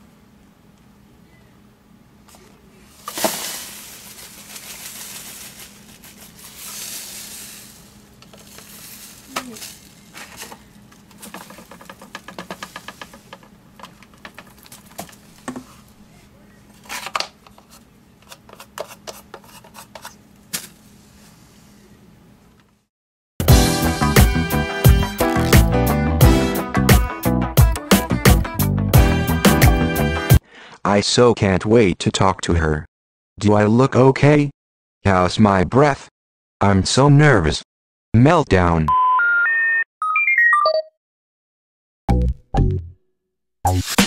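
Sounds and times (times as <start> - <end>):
bag rustling: 2.9 - 15.9, 25.2 - 25.7
plastic clicks and knocks: 11.1 - 15.6.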